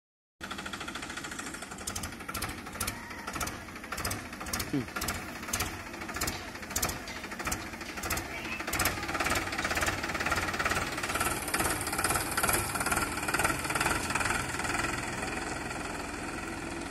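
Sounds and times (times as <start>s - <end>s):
tractor diesel engine clattering: 0.4s - 16.9s.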